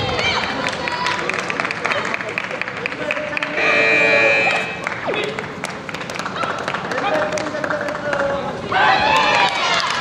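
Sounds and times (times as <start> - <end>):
sports hall noise: 0.0 - 10.0
electronic buzzer tone: 3.5 - 4.9.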